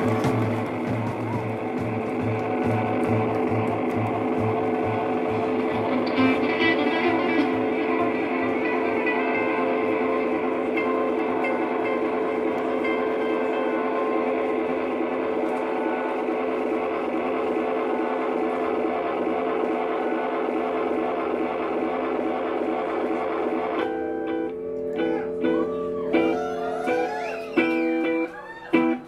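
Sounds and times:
picked guitar notes: 0.0 - 29.0
sustained electric guitar drone: 0.0 - 29.0.

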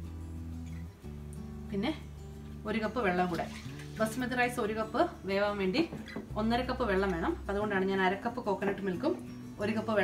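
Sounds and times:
music with held low notes: 0.0 - 10.0
woman speaking: 1.7 - 10.0.

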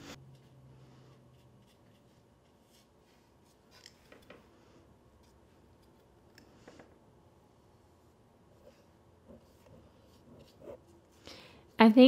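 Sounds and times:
paintbrush scratching on paper: 0.0 - 3.7, 8.6 - 11.2.

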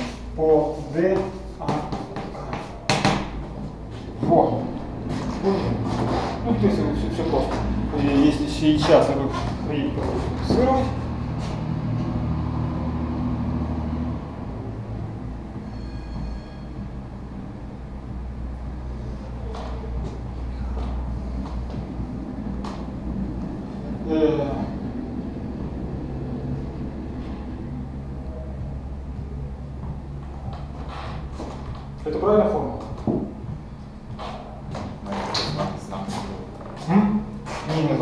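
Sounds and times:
low background hum: 0.0 - 38.0
low mechanical rumble: 0.0 - 38.0.

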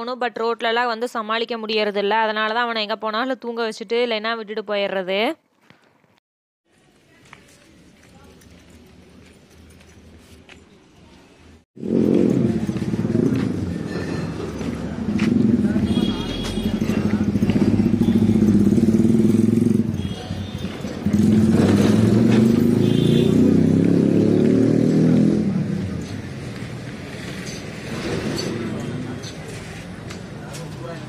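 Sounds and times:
motorcycle engines passing: 11.8 - 31.0.

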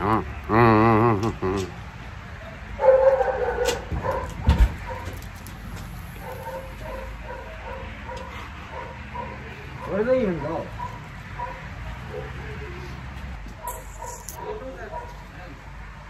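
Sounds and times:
dog barking faintly: 6.2 - 12.8.

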